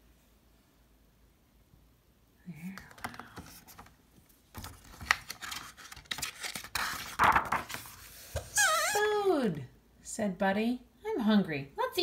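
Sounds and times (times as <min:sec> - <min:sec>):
paper page rustling: 0:02.8 - 0:08.6
woman speaking: 0:08.8 - 0:12.0.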